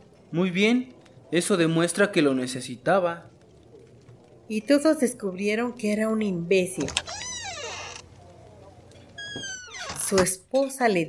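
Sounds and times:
faint low background noise: 0:00.0 - 0:11.0.

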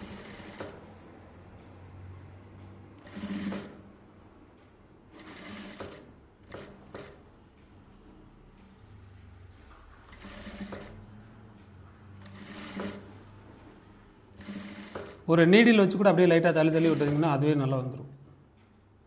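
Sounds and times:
sewing machine stitching: 0:00.0 - 0:00.9, 0:03.0 - 0:03.9, 0:05.1 - 0:07.2, 0:10.1 - 0:11.2, 0:12.1 - 0:13.4, 0:14.3 - 0:15.3, 0:16.6 - 0:17.6.

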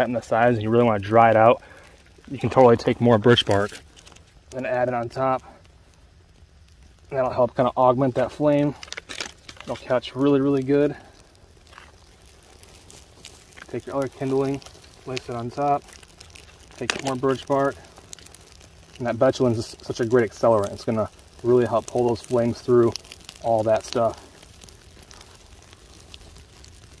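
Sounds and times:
twig fire crackling: 0:00.0 - 0:27.0.

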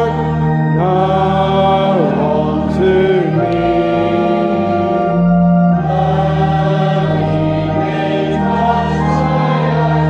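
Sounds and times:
congregation singing a hymn: 0:00.0 - 0:10.0
steady low accompanying tone: 0:00.0 - 0:10.0.

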